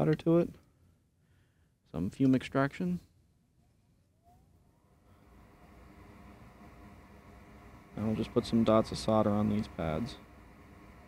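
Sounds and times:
fume extractor fan whirring: 4.1s - 11.0s.

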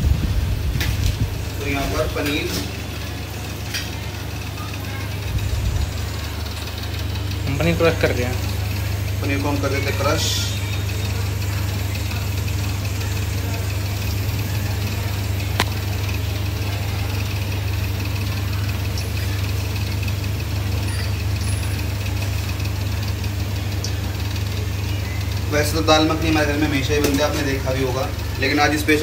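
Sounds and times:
low mechanical hum: 0.0s - 29.0s.

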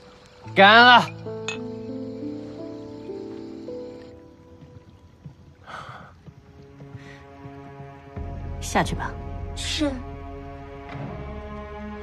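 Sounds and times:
soft background music: 0.0s - 12.0s
ceramic cups clinking: 1.0s - 1.7s.

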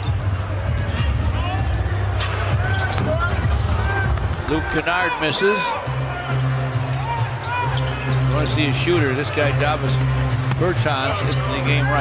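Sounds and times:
sneaker squeaks: 0.0s - 11.6s
arena music with deep bass: 0.1s - 12.0s.

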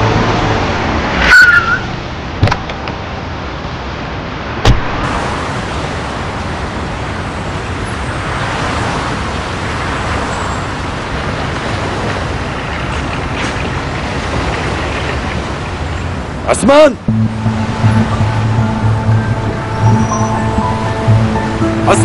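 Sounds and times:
road traffic noise: 0.0s - 22.0s.

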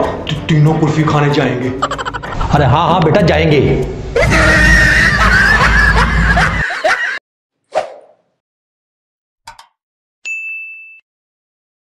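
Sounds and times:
notification bell ding: 10.2s - 11.0s.

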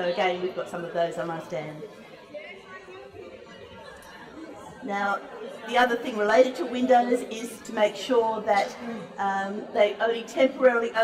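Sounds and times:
faint background chatter: 0.0s - 11.0s
woman speaking: 4.8s - 11.0s.

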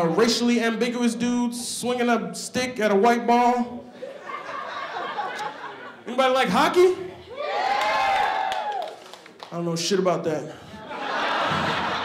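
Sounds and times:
person whooping cheer: 7.3s - 9.1s.

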